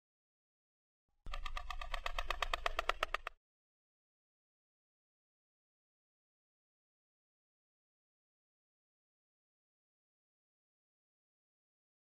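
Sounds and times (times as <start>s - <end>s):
rapid pulsing tone: 1.3s - 3.3s.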